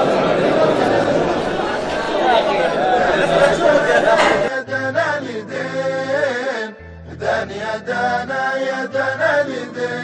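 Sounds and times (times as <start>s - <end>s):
many men talking in echoing hall: 0.0s - 4.7s.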